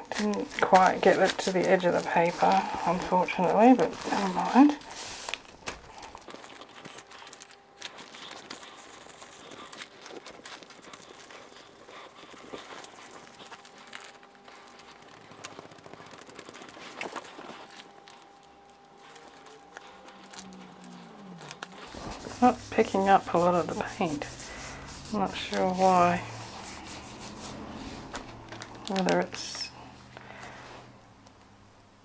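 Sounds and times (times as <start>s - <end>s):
thin paper rustling and rubbing: 0.0s - 30.7s.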